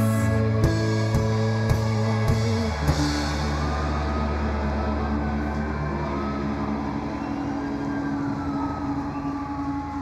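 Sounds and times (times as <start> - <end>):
sustained low drone: 0.0 - 10.0.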